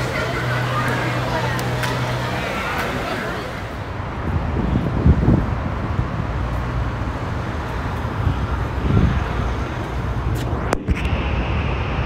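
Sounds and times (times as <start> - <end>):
city street traffic: 0.0 - 12.0
wind buffeting microphone: 3.0 - 12.0.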